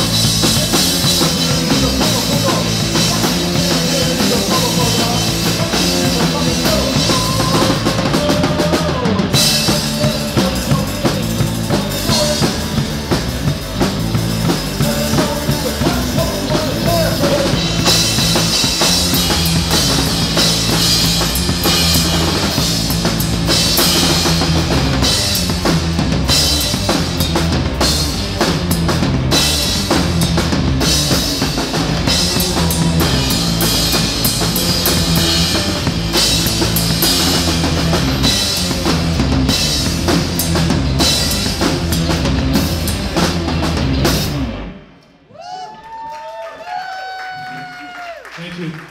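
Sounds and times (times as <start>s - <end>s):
electric bass line: 0.0s - 45.0s
live rock band playing: 0.0s - 45.0s
drum kit: 0.0s - 45.2s.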